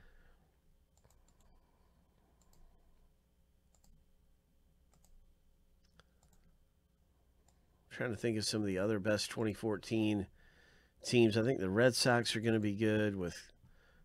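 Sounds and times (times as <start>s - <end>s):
computer mouse clicks: 0.9s - 1.6s, 2.4s - 2.7s, 3.7s - 4.0s, 4.9s - 5.2s, 5.8s - 6.5s.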